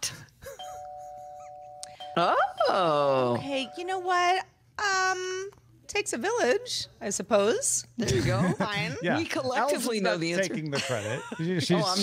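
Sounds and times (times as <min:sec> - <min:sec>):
electronic quiz chime: 0:00.6 - 0:04.2.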